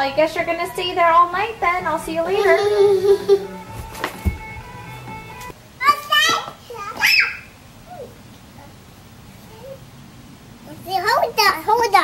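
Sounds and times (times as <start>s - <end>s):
background music with steady tones: 0.0s - 5.6s
young child squealing: 6.8s - 8.2s.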